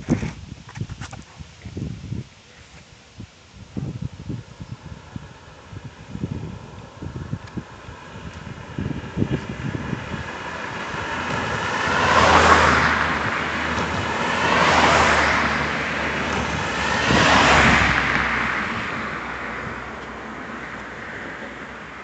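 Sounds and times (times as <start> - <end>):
wind buffeting microphone: 0.0 - 22.0
cars passing on road: 4.3 - 22.0.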